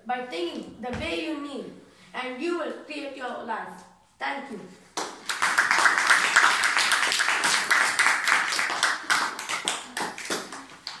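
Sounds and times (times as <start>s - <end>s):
group hand clapping: 4.9s - 11.0s.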